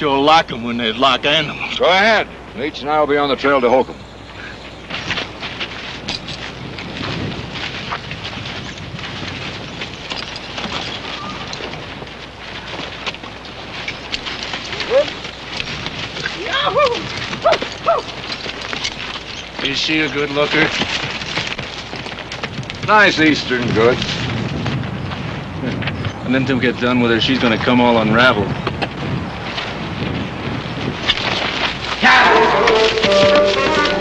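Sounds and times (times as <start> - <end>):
steady soundtrack hiss: 0.0 - 6.8
hoof clops on dirt: 4.2 - 34.0.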